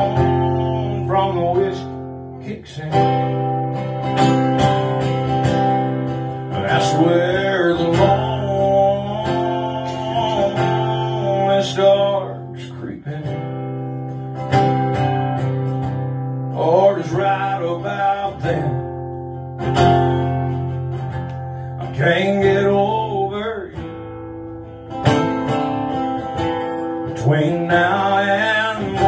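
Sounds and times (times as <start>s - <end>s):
acoustic guitar strumming chords: 0.0s - 29.0s.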